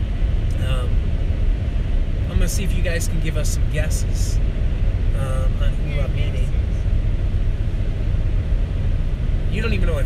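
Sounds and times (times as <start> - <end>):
car interior road rumble: 0.0 - 10.0.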